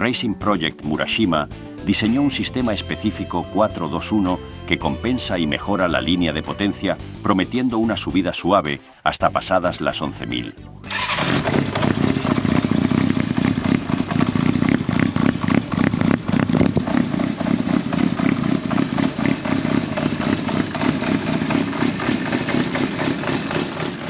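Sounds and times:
motorcycle engine running: 10.9 - 24.0.

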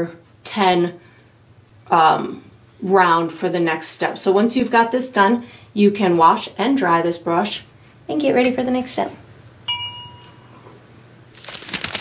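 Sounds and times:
bell-like chime: 9.7 - 10.6.

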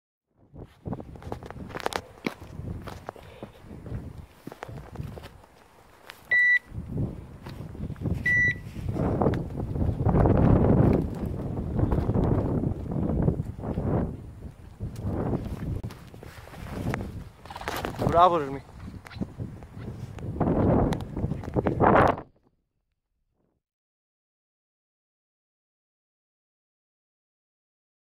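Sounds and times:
footsteps crunching through dry scrub: 0.6 - 22.2
short electronic beeps: 6.3 - 6.7, 8.2 - 8.7.

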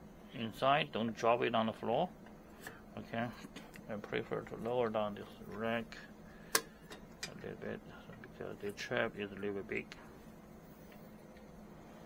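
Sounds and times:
plastic specimen holder clicks: 6.5 - 7.4.

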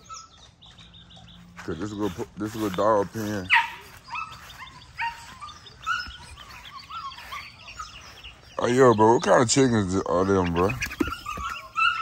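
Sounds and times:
chicks cheeping: 0.0 - 12.0.

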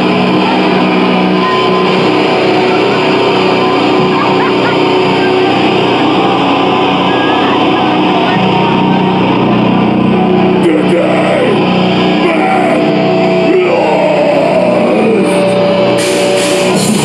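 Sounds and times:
crowd shouting and cheering: 0.0 - 17.0
distorted guitar and bass drone: 0.0 - 17.0.

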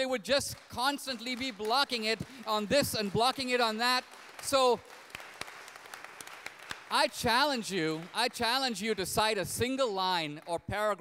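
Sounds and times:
audience applause: 0.5 - 9.0.

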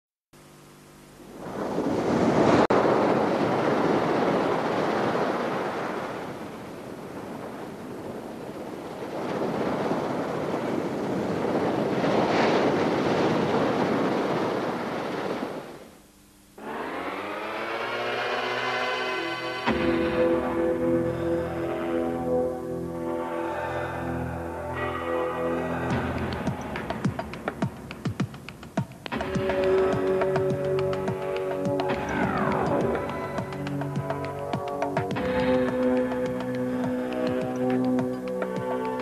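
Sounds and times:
music with rising tones: 16.6 - 39.0.

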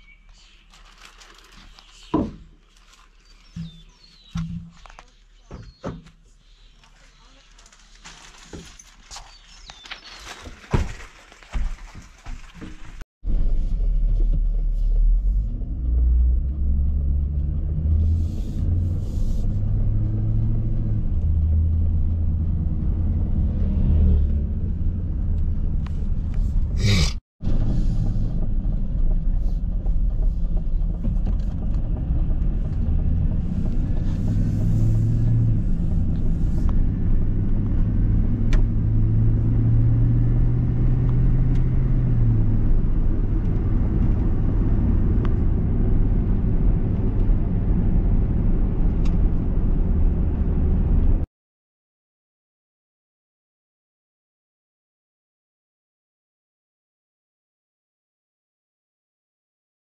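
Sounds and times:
vehicle engine and road rumble: 0.0 - 51.3.

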